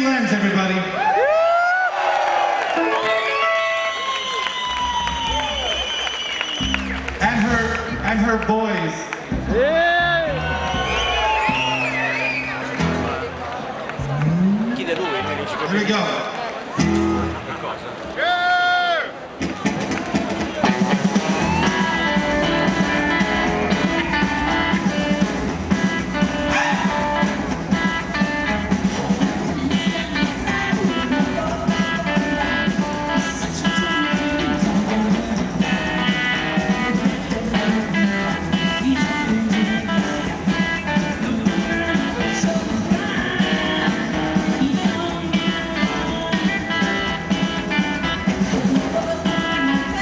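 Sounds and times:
rockabilly band playing live: 2.7s - 15.7s, 16.5s - 18.1s, 19.3s - 50.0s
drum kit: 4.6s - 8.4s, 9.3s - 13.3s, 19.4s - 50.0s
electric guitar: 16.7s - 17.7s, 19.4s - 50.0s.

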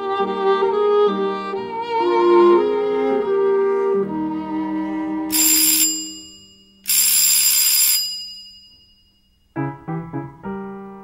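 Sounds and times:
electric doorbell ringing: 5.3s - 9.6s.

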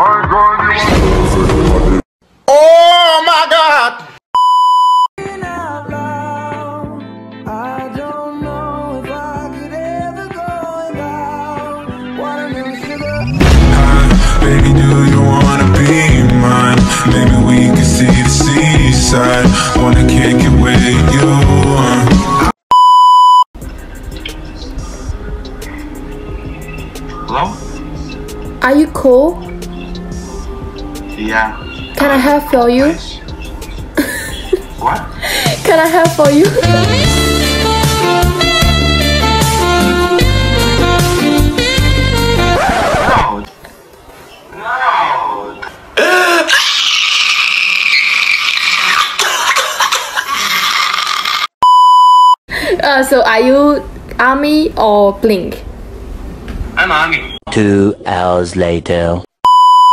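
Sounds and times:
high electronic bleep tone: 4.4s - 5.1s, 22.7s - 23.5s, 59.5s - 59.9s
background music: 5.2s - 22.6s, 23.6s - 43.4s
man wailing and sobbing: 36.4s - 37.7s, 46.0s - 47.5s.

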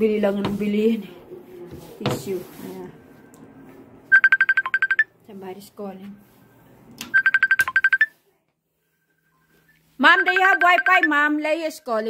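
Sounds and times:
phone ringtone beeps: 4.1s - 5.1s, 7.1s - 8.2s, 9.0s - 11.3s.

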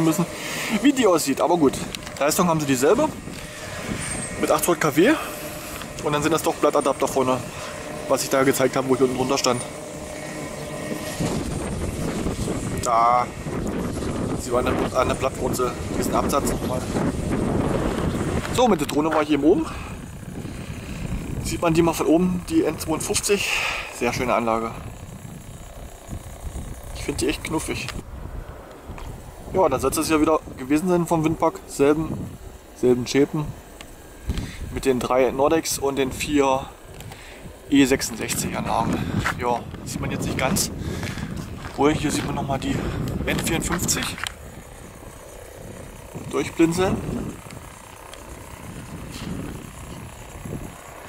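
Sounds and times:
wind buffeting microphone: 0.0s - 51.0s
faint ticks: 36.9s - 37.3s.

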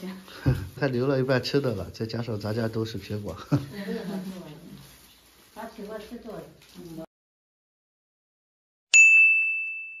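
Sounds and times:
bright ding chime: 8.9s - 10.0s.

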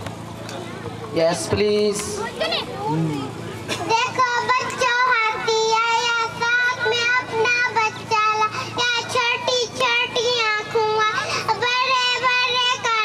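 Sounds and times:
girl singing into a microphone: 3.9s - 13.0s.

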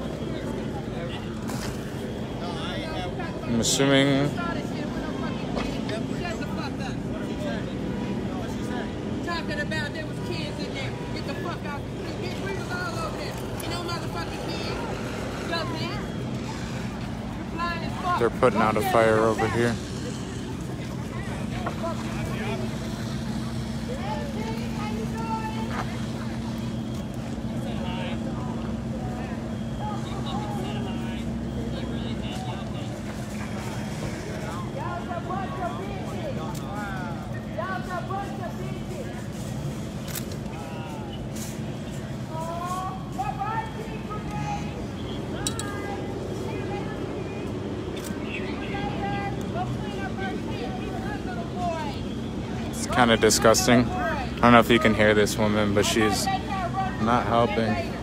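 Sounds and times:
crowd voices and calls: 0.0s - 58.0s.

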